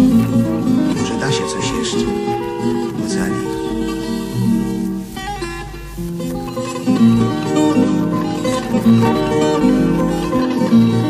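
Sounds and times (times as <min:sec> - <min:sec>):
plucked guitar instrumental: 0:00.0 - 0:11.0.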